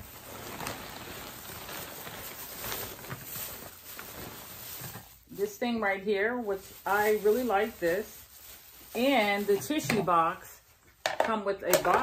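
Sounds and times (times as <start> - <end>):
plastic bag rustling: 0.0 - 10.9.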